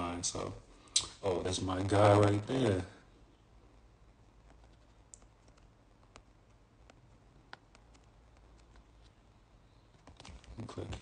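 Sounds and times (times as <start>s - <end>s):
fingers tapping touchscreen: 4.4s - 9.2s.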